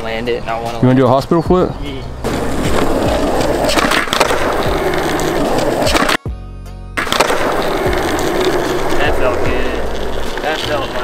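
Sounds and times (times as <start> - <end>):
background music: 0.6 - 11.0
skateboard wheels rolling: 2.2 - 6.2, 7.0 - 11.0
skateboard clacking down: 2.3 - 6.2, 7.0 - 11.0.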